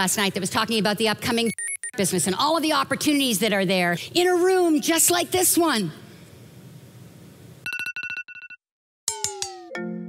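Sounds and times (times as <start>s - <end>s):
telephone ringing: 7.6s - 8.6s.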